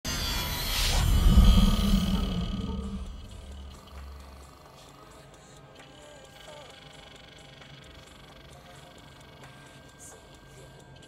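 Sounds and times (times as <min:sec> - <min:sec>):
deep rumbling swell: 0:00.1 - 0:04.4
low electronic hum: 0:00.1 - 0:04.5.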